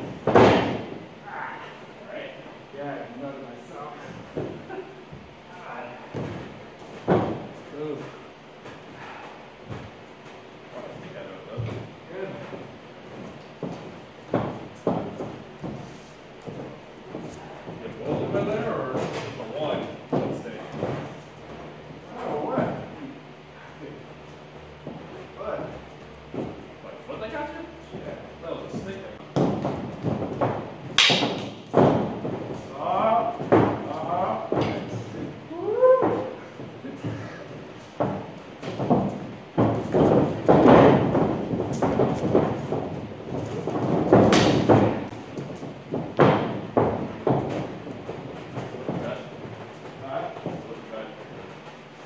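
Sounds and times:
heavy thud of footwork: 0:00.0 - 0:01.8, 0:06.0 - 0:10.5, 0:11.5 - 0:22.7, 0:24.8 - 0:26.8, 0:27.8 - 0:52.0
stick strike crack: 0:31.0 - 0:31.5.

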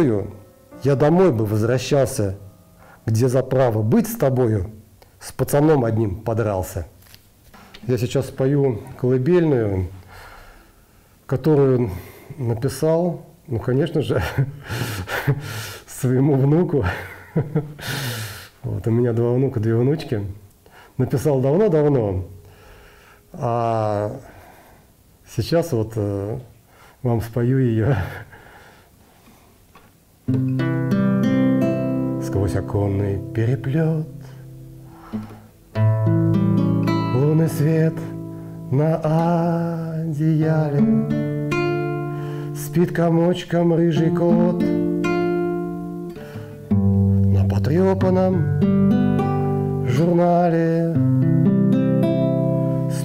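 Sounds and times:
acoustic guitar chords and plucking: 0:00.0 - 0:04.0, 0:30.3 - 0:53.0.

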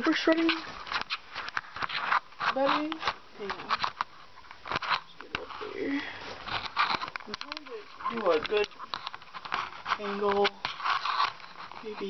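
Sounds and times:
person speaking: 0:00.0 - 0:00.7, 0:02.4 - 0:03.9, 0:05.0 - 0:06.4, 0:07.2 - 0:08.9, 0:09.9 - 0:10.6, 0:11.7 - 0:12.0
handling rustles and knocks: 0:00.0 - 0:12.0.

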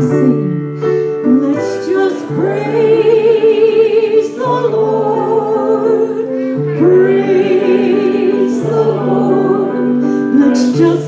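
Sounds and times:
woman singing with vibrato: 0:01.3 - 0:11.0
sustained accompaniment notes: 0:01.8 - 0:11.0.

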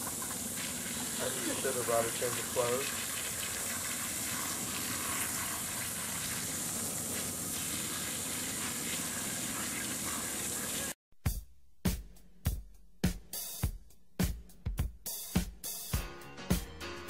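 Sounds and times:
hose water splashing on concrete: 0:00.0 - 0:11.0.

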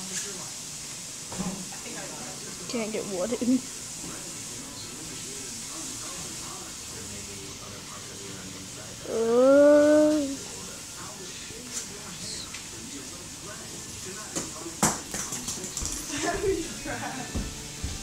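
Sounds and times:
faint steady hiss: 0:00.0 - 0:15.0.

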